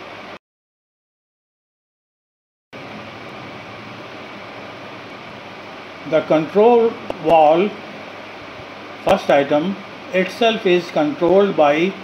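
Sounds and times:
steady background hiss: 0:02.8 - 0:12.0.

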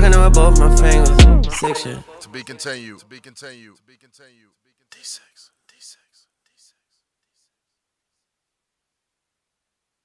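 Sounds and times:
person whispering breathily: 0:04.9 - 0:07.6.

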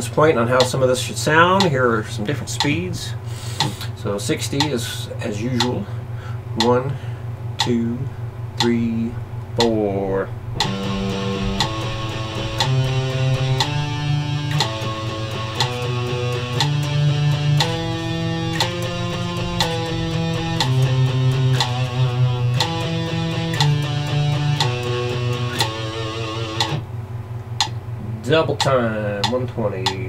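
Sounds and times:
metronome clicking: 0:01.6 - 0:01.8, 0:02.6 - 0:02.8, 0:04.6 - 0:04.8, 0:05.6 - 0:05.8, 0:06.6 - 0:06.9, 0:07.6 - 0:07.9, 0:08.6 - 0:09.0, 0:09.6 - 0:09.9, 0:10.6 - 0:26.8, 0:27.5 - 0:27.8, 0:28.6 - 0:30.0
electric guitar picking notes: 0:09.6 - 0:27.0.

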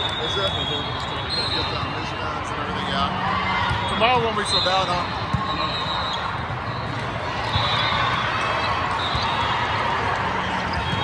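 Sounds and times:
crowd chatter in echoing hall: 0:00.0 - 0:11.0
volleyballs struck and bouncing: 0:06.4 - 0:11.0.

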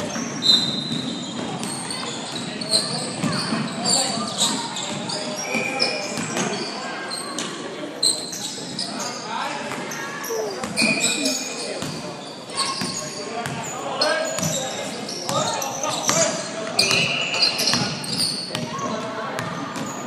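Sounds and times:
players and spectators voices: 0:00.0 - 0:20.0
sneakers squeaking on court: 0:00.0 - 0:20.0.

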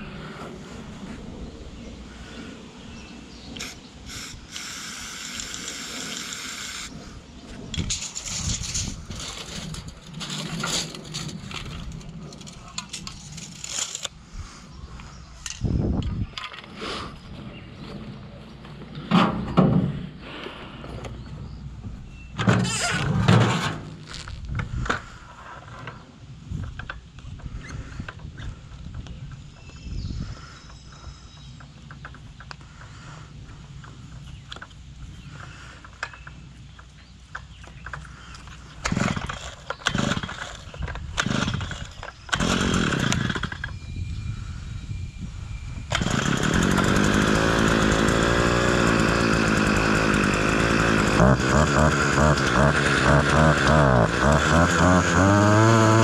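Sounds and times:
two-stroke engine running: 0:38.8 - 0:40.5, 0:41.2 - 0:43.6, 0:45.9 - 0:56.0.

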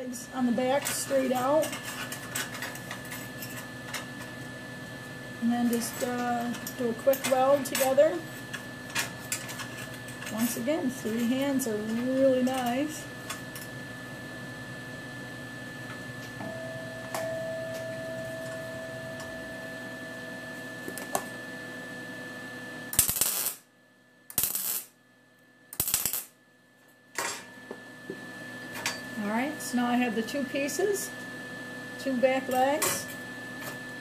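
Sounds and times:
low shop hum: 0:00.0 - 0:34.0
welder arc crackling: 0:22.9 - 0:23.7, 0:24.3 - 0:25.0, 0:25.7 - 0:26.3.

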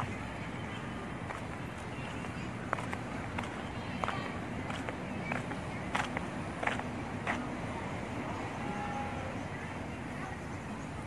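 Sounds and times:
faint distant voices: 0:00.0 - 0:11.0
outdoor background noise: 0:00.0 - 0:11.0
footsteps walking: 0:01.1 - 0:07.4.

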